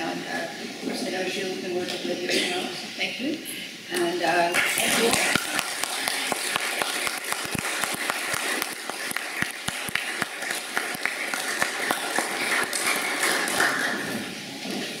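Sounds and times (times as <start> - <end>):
audience applauding: 4.6 - 14.3.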